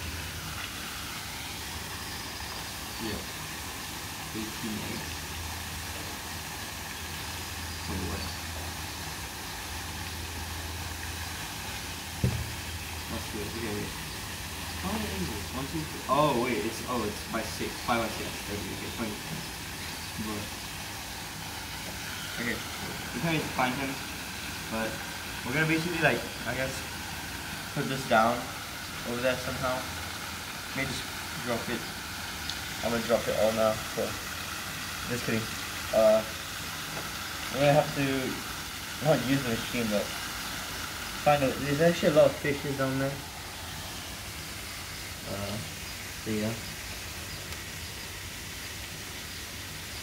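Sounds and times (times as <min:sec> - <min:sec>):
steady hiss: 0:00.0 - 0:50.0.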